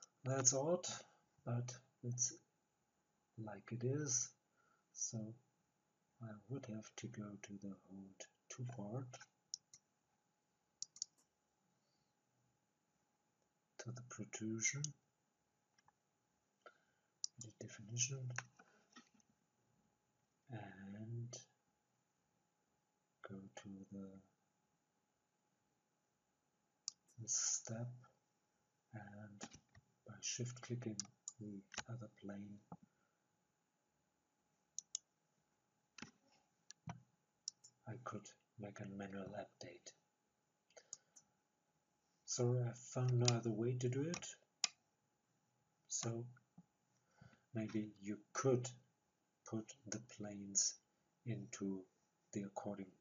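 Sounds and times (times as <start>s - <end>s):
computer mouse clicking: 10.8s - 11.2s, 29.4s - 29.8s, 31.0s - 31.9s, 34.8s - 35.0s, 43.2s - 43.4s.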